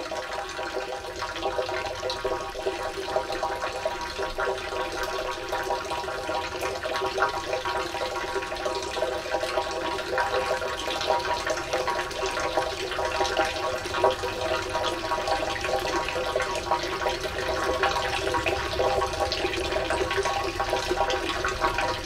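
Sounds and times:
water dripping: 0.0s - 22.0s
water pouring into fountain basins: 0.0s - 22.0s.

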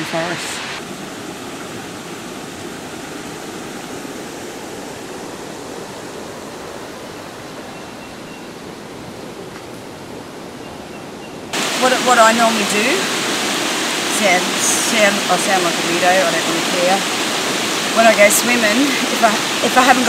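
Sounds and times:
river rushing over rocks: 0.0s - 9.4s, 11.5s - 20.0s.

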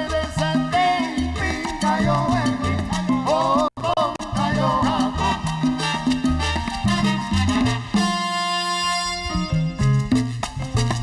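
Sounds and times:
salsa band playing live: 0.0s - 11.0s
upright bass line: 0.0s - 11.0s.

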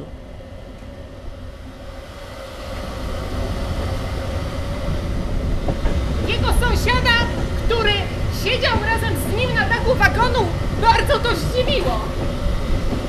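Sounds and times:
train rumbling: 0.0s - 13.0s.

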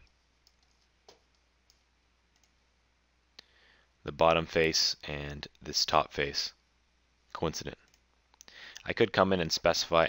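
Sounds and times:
computer mouse clicks: 0.4s - 2.6s.

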